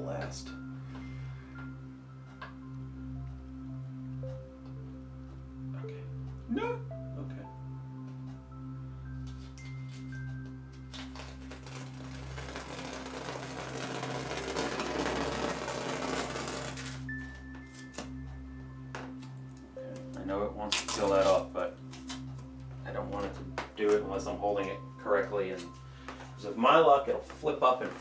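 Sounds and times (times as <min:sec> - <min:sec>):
soft background music: 0:00.0 - 0:28.0
masking tape tearing off canvas: 0:10.9 - 0:17.1, 0:20.7 - 0:22.3.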